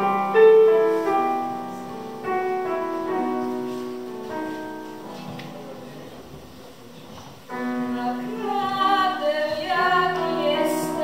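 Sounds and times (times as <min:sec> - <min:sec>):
electric keyboard accompaniment: 0:00.0 - 0:11.0
girl singing into a microphone: 0:07.8 - 0:11.0.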